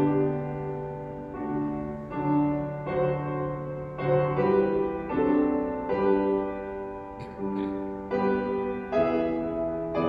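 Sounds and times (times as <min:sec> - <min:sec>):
piano playing slow hymn chords: 0:00.0 - 0:10.0.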